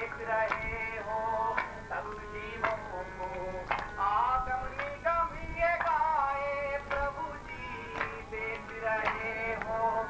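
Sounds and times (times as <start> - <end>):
group singing devotional chant: 0.0 - 10.0.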